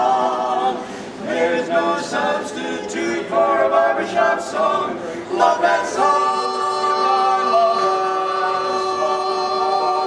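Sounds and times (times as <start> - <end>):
male quartet singing in harmony: 0.0 - 10.0.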